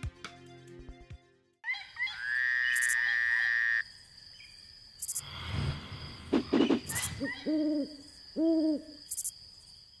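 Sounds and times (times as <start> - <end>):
night insects chirring: 1.7 - 10.0
owl hooting: 6.9 - 9.0.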